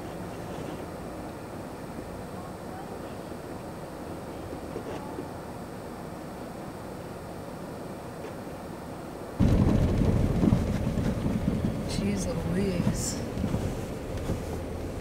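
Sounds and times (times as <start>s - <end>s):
muffled rumble inside a car: 0.0s - 6.8s, 7.7s - 15.0s
loud uneven low rumble: 9.4s - 15.0s.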